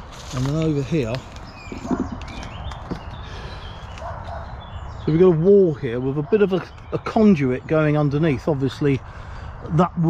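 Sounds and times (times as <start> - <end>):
footsteps on dry leaves: 0.0 - 4.6
bird chirps: 1.2 - 8.4.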